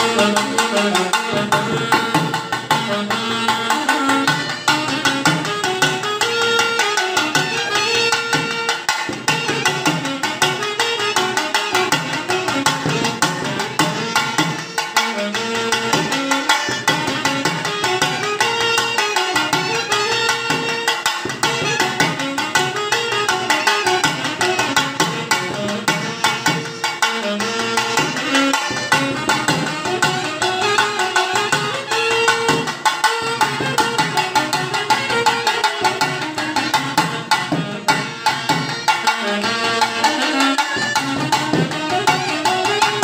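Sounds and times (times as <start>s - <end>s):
hand drum beats: 0.0s - 43.0s
harmonium: 0.0s - 43.0s
saxophone melody: 0.0s - 43.0s.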